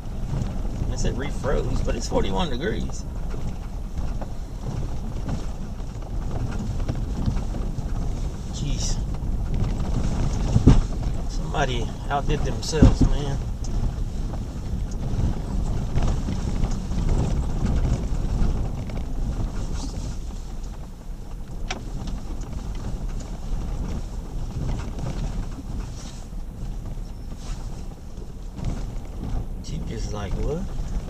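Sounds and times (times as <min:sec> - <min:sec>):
engine and tyres rumbling: 0:00.0 - 0:31.0
knocks over bumps: 0:00.0 - 0:31.0.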